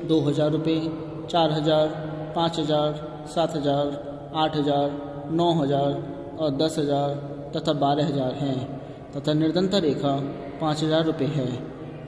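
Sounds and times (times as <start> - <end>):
man talking: 0.0 - 11.7.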